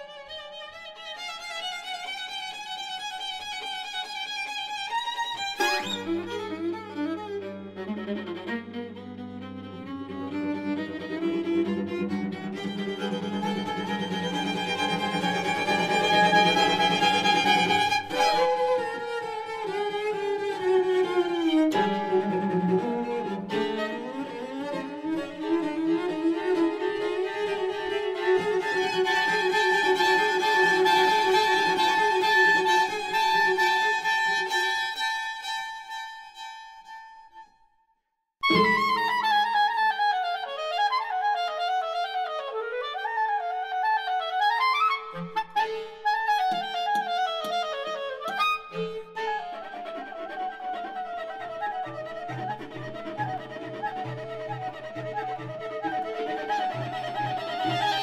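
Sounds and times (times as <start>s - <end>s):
bowed string quartet: 0.0s - 36.4s, 38.4s - 58.0s.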